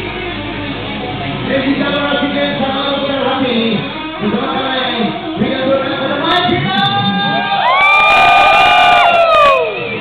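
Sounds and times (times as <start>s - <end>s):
electric guitar note bending: 0.0s - 7.4s
crowd cheering: 7.1s - 10.0s.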